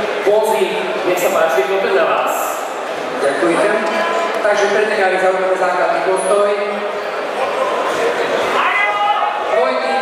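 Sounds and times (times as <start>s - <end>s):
voices in a large hall: 0.0s - 10.0s.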